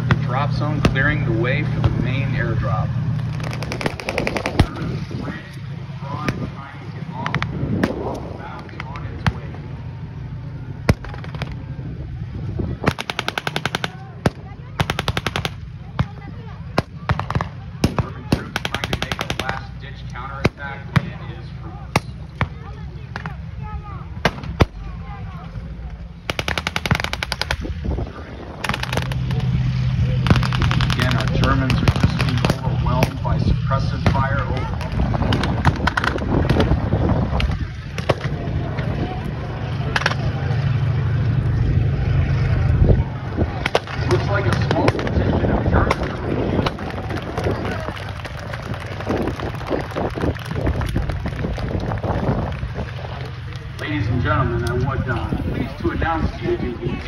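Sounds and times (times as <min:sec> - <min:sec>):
low engine drone: 0:00.0 - 0:57.0
machine-gun bursts: 0:03.3 - 0:04.7, 0:12.9 - 0:14.0, 0:26.3 - 0:27.6.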